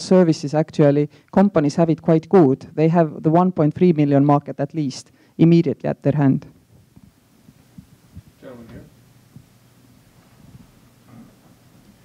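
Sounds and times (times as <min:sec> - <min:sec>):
faint low thumps: 0:06.6 - 0:11.6.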